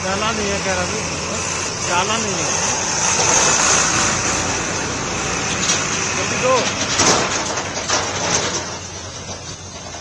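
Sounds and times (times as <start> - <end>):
vehicle passing by: 0.0 - 7.0
vehicle and road noise: 0.0 - 10.0.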